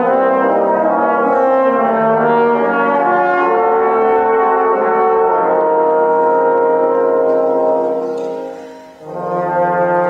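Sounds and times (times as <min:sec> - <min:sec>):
trombones holding a chord: 0:00.0 - 0:10.0.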